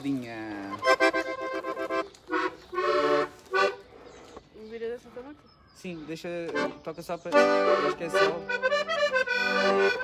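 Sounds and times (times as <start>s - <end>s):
accordion chords: 0.6s - 4.1s, 6.2s - 10.0s.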